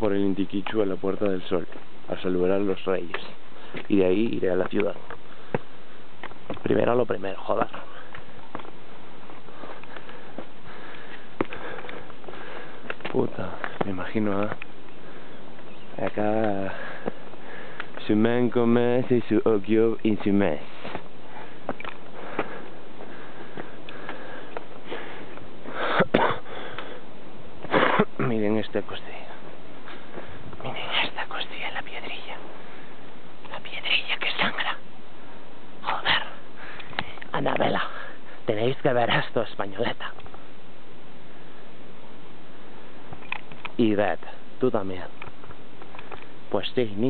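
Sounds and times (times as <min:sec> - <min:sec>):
background hiss: 0:00.0 - 0:47.0
person whispering: 0:28.8 - 0:29.4, 0:30.6 - 0:32.4, 0:33.4 - 0:34.8, 0:35.8 - 0:36.4, 0:39.7 - 0:40.2.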